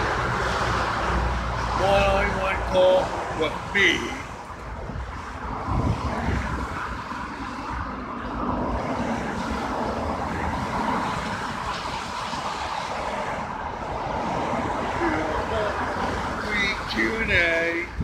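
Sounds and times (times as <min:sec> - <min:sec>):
road traffic passing: 0:00.0 - 0:18.0
wind rumbling on microphone: 0:00.0 - 0:18.0.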